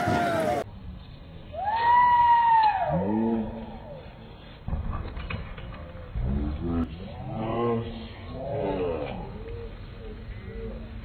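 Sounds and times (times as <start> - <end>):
people shouting: 0.0 - 0.6
bikes rolling down ramp: 0.0 - 11.0.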